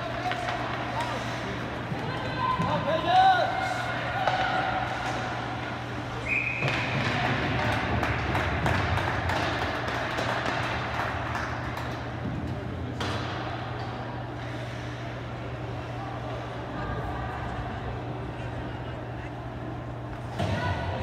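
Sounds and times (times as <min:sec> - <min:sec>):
spectators' voices and shouts: 0:00.0 - 0:05.6.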